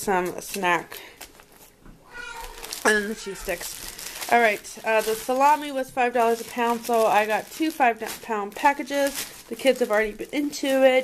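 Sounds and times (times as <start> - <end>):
grocery packages handled: 0.0 - 11.0.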